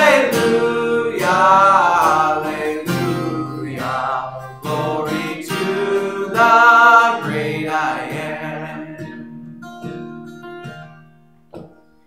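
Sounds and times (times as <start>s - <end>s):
man singing: 0.0s - 9.2s
acoustic guitar strumming: 0.0s - 12.0s.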